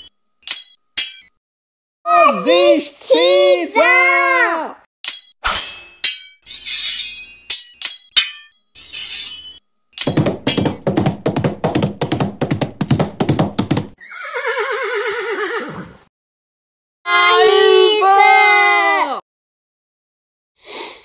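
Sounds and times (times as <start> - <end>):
fast horse hoofbeats: 10.1 - 14.0
horse whinnying: 14.0 - 16.0.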